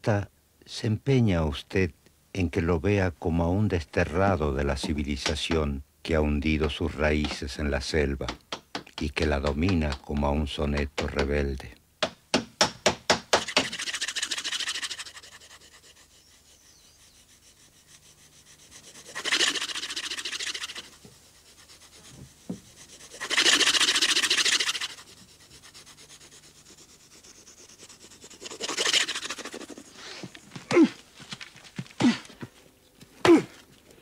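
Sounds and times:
tool rasping on wood: 0:06.6 - 0:07.6, 0:12.8 - 0:30.6.

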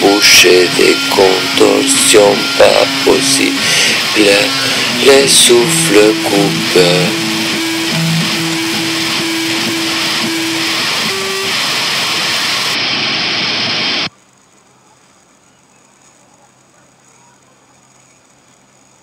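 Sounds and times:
loud steady rushing noise: 0:00.0 - 0:14.1.

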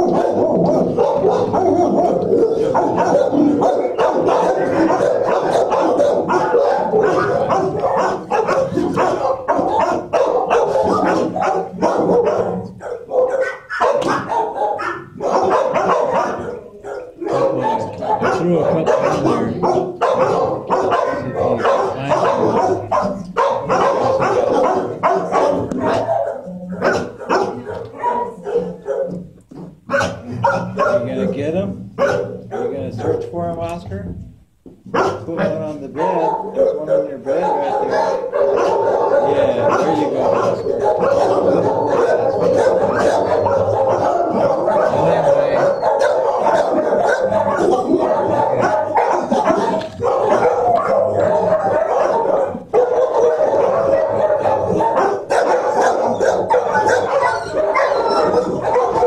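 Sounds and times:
dogs barking: 0:00.0 - 0:33.8, 0:34.8 - 0:59.0.

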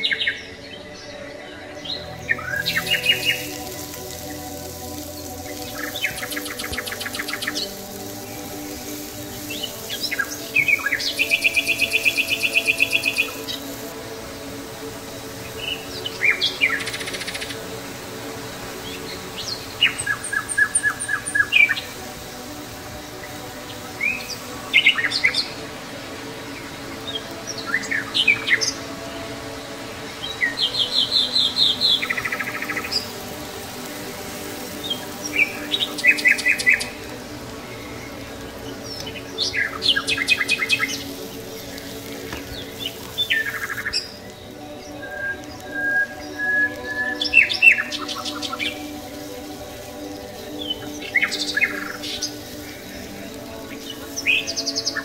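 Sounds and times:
birds chirping and trilling: 0:00.0 - 0:55.0
soft steady drone: 0:00.0 - 0:55.0.

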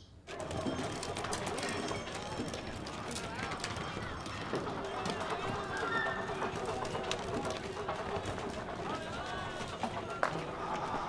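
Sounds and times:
voices chattering: 0:00.3 - 0:11.0.

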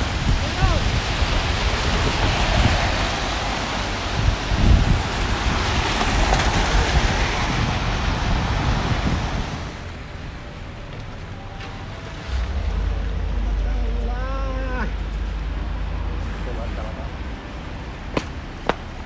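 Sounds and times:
wind buffeting microphone: 0:00.0 - 0:09.9
traffic hiss on wet street: 0:00.0 - 0:13.4, 0:14.5 - 0:19.0.

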